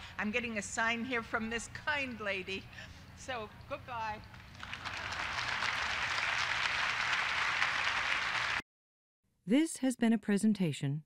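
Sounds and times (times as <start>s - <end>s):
audience applauding: 4.4s - 8.6s.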